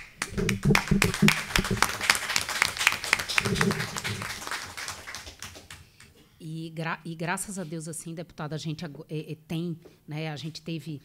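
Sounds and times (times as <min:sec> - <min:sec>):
people applauding: 0:00.0 - 0:06.1.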